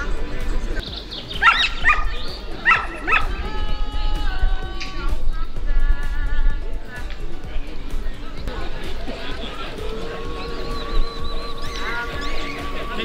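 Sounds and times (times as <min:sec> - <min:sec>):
background music: 0:00.0 - 0:13.0
dog barking: 0:01.4 - 0:03.4.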